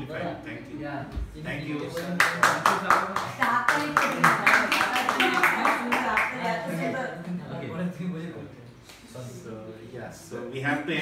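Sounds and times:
hand clapping: 0:01.8 - 0:06.4.

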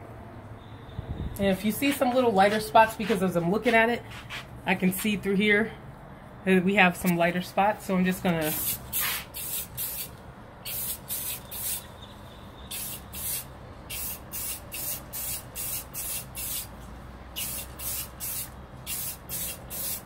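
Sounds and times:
aerosol spray can hissing: 0:08.4 - 0:10.1, 0:10.7 - 0:11.9, 0:12.7 - 0:16.7, 0:17.4 - 0:20.0.

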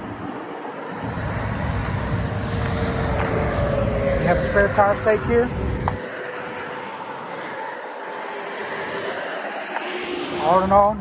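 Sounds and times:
distant engine drone: 0:00.0 - 0:11.0.

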